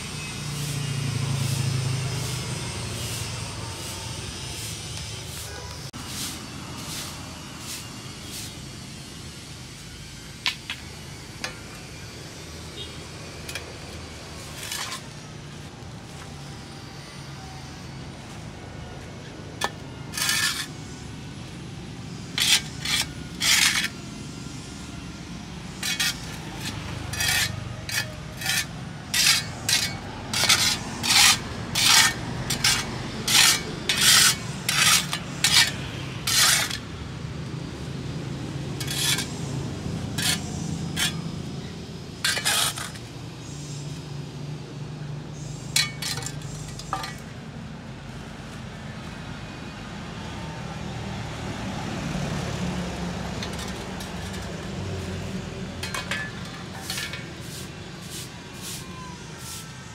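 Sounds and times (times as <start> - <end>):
shovel scraping concrete: 2.2 - 8.6, 13.5 - 15.2, 19.6 - 21.0, 22.3 - 24.1, 25.7 - 36.9, 38.8 - 39.5, 40.2 - 43.1, 45.4 - 47.3, 53.3 - 59.9.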